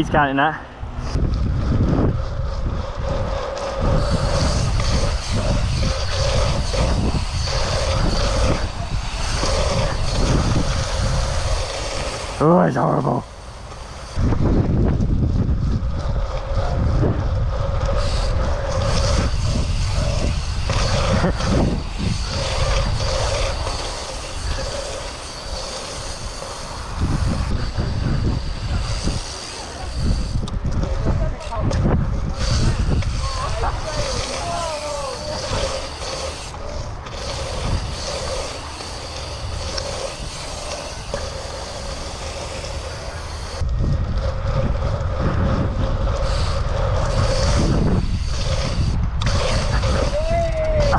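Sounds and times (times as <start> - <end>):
wind buffeting microphone: 0.0 - 50.9
bike tyres rolling on wet asphalt: 0.8 - 50.9.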